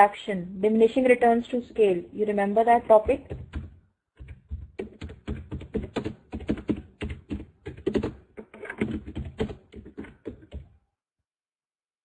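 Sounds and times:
typing on computer keyboard: 2.8 - 10.7.

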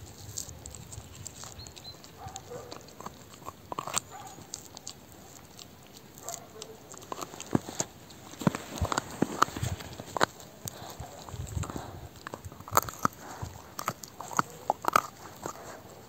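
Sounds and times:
bones cracking: 0.0 - 16.0
dog chewing bones: 0.0 - 16.0.

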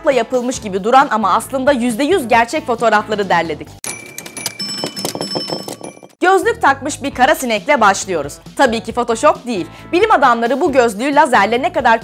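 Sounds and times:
bell-like tones: 3.8 - 6.2.

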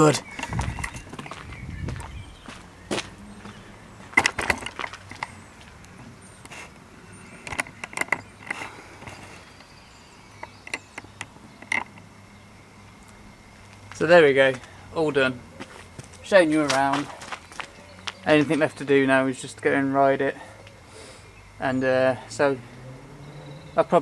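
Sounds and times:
outdoor background noise: 0.0 - 24.0.

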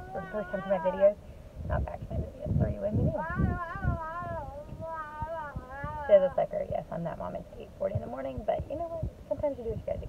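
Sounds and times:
child's wavering voice: 0.0 - 1.2, 3.0 - 6.5.

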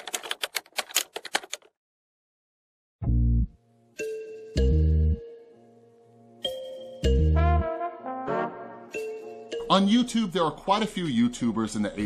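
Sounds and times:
rapid sharp clicks: 0.0 - 1.7.

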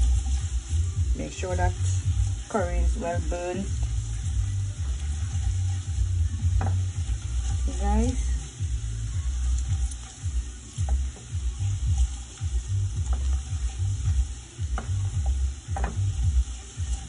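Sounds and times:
food sizzling in oil: 0.0 - 17.0.

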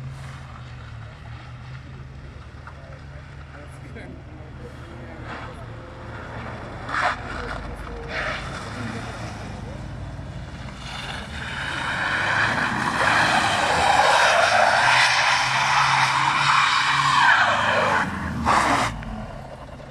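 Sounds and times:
diesel engine under throttle: 0.0 - 19.9
tyres skidding on wet asphalt: 0.0 - 19.9.

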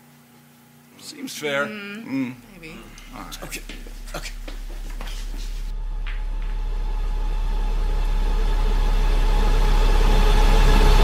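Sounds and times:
low droning rumble: 5.5 - 11.0.

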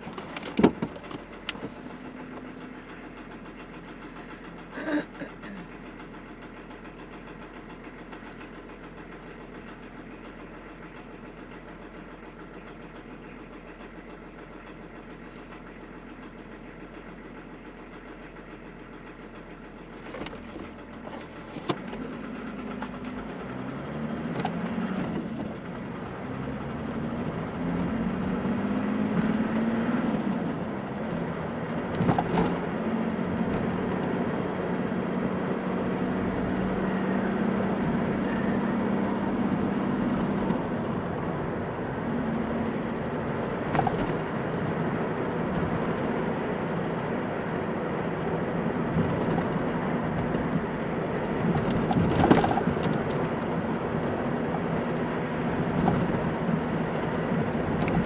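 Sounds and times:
car engine idling: 0.0 - 58.0
car accelerating: 20.0 - 58.0.

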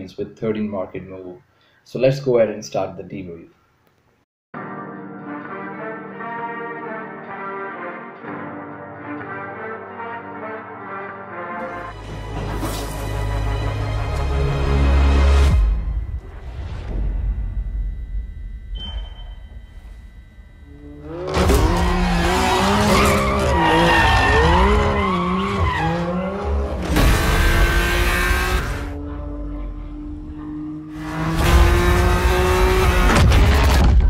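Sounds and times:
background music: 4.6 - 19.0
rushing tyre and exhaust noise: 19.4 - 34.0
race car engine revving: 20.7 - 33.8
tyre squeal: 20.8 - 26.4.

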